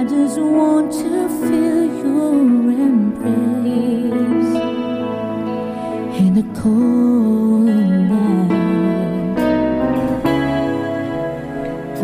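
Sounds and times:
sustained keyboard chords: 0.0s - 12.0s.

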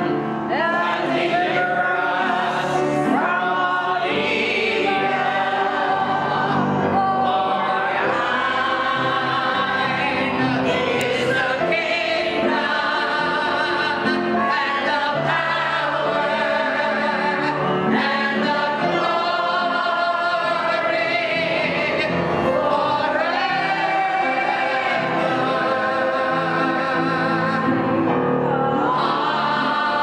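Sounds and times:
congregation singing a hymn: 0.0s - 30.0s
instrumental accompaniment: 0.0s - 30.0s.

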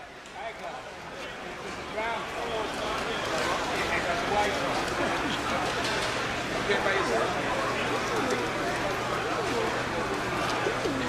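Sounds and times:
pigeons cooing: 10.6s - 11.0s.

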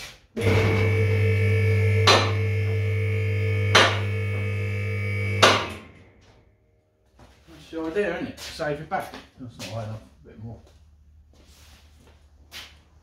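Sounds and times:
electric lift motor humming: 0.4s - 6.5s.

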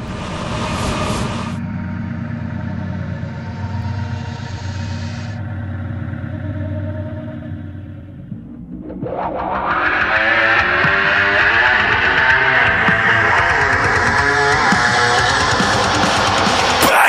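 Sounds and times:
loud low rumble: 0.0s - 9.3s.

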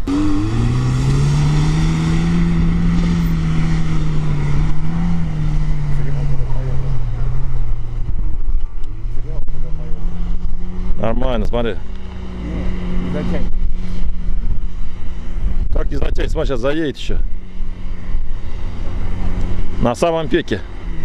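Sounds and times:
car engine revving hard: 0.0s - 8.0s.

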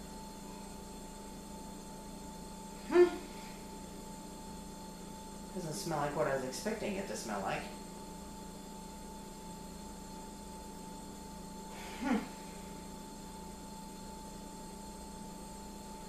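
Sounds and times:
room hum: 0.0s - 16.0s.

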